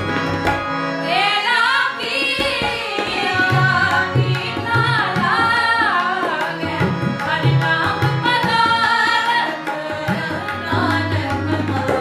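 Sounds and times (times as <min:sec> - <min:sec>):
harmoniums: 0:00.0 - 0:12.0
tabla: 0:00.0 - 0:12.0
women singing together: 0:01.0 - 0:12.0.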